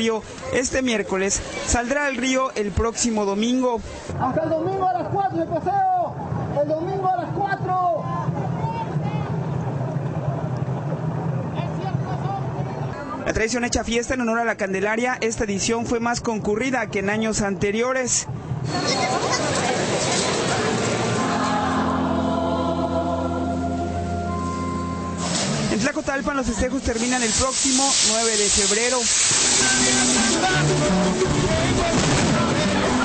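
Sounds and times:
faint voices: 18.6 - 22.0
choir singing church music: 18.7 - 25.7.

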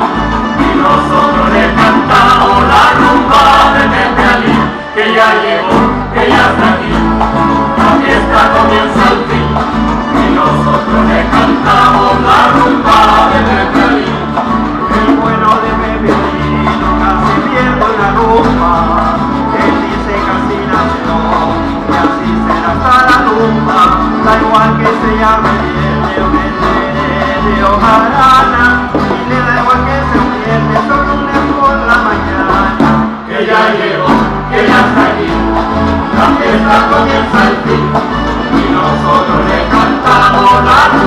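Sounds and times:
electric bass line: 0.0 - 33.3, 34.0 - 41.0
folk band playing rumba: 0.0 - 41.0.

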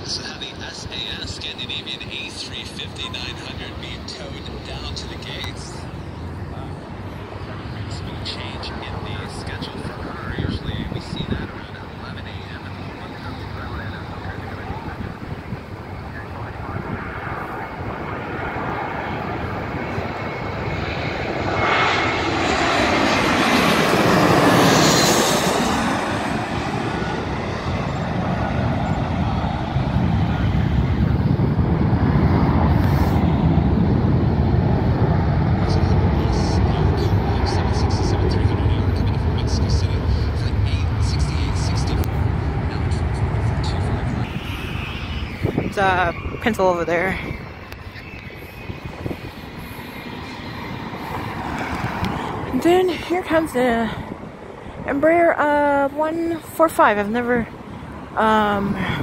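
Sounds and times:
jet engine whine: 0.0 - 59.0
jet passing overhead: 0.0 - 59.0.

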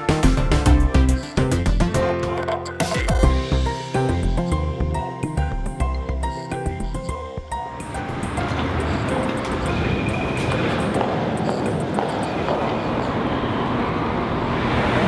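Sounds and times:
background music: 0.0 - 12.7
railway station crowd din: 7.6 - 15.0.

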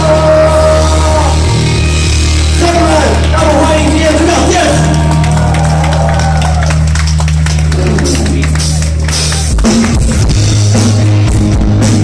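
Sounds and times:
bass line: 0.0 - 12.0
live rock band playing: 0.0 - 12.0
drum and cymbal hits: 8.0 - 12.0.

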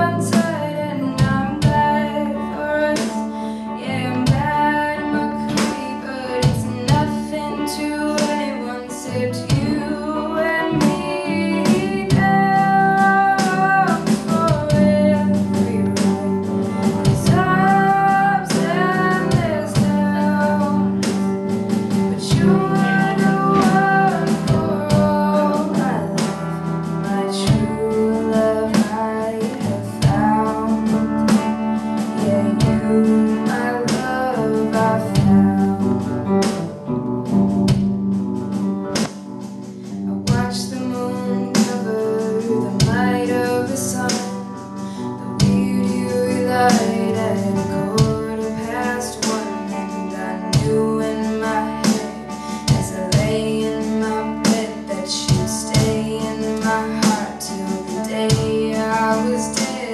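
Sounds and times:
person singing melody: 0.0 - 38.2, 38.8 - 59.9
drum kit: 0.0 - 59.9
electric guitar: 0.0 - 59.9.

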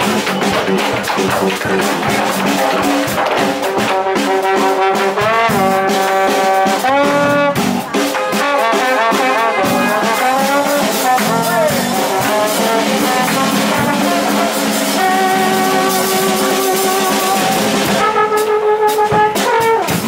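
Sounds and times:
drums and cymbals: 0.0 - 20.0
horns playing jazz melody: 0.0 - 20.0.

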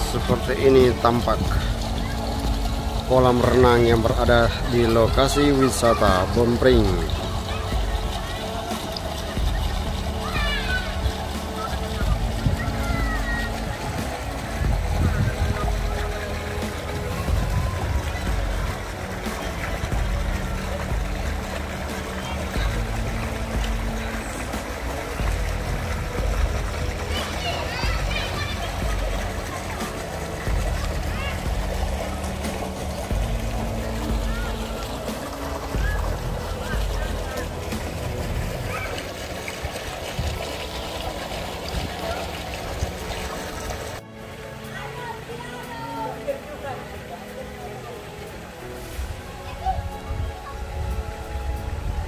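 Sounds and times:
low uneven rumble: 0.0 - 44.0
background music: 0.0 - 52.0
distant indistinct voices: 0.0 - 52.0
water splashing: 0.0 - 52.0.

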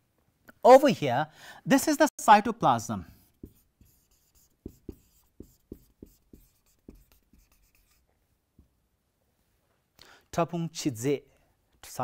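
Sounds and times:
marker pen writing on whiteboard: 3.1 - 8.7.

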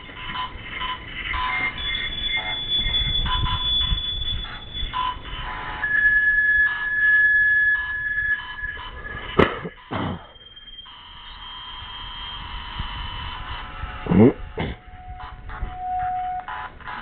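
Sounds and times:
choppy electronic sound fragments: 0.0 - 17.0
lower steady tone: 0.0 - 17.0
steady high tone: 0.0 - 17.0.

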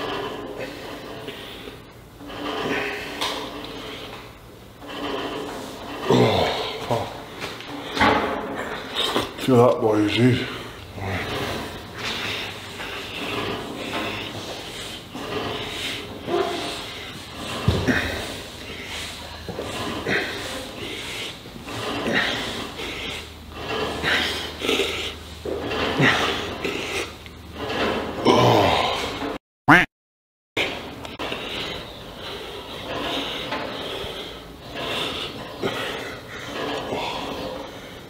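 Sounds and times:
heavy breathing and grunting: 0.0 - 29.4, 30.6 - 38.0.

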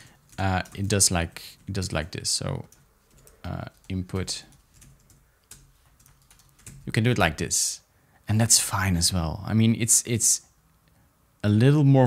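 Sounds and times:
keyboard keystrokes: 2.6 - 6.9.

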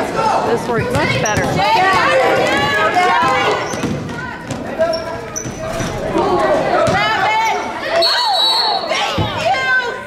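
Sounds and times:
spectators' voices: 0.0 - 10.0
basketball bouncing on wooden floor: 0.7 - 4.7
sneaker squeaks: 0.8 - 1.9, 3.2 - 6.1.

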